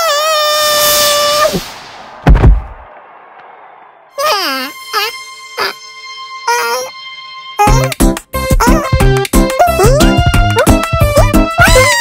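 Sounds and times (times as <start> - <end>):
cartoon character screaming: 0.0 - 1.6, 11.6 - 12.0
body hitting the ground: 2.3 - 2.8.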